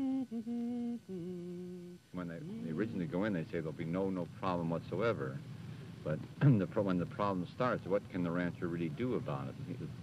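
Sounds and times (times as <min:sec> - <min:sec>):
person humming melody: 0:00.0 - 0:03.2.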